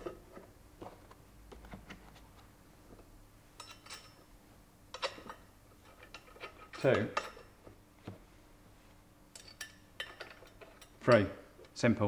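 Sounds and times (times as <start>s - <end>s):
metal nuts clinking: 3.6s - 4.2s, 9.3s - 11.3s.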